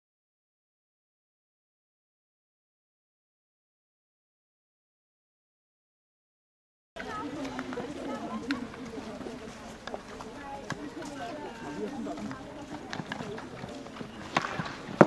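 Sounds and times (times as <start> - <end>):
hockey sticks hitting ball: 12.8 - 15.0.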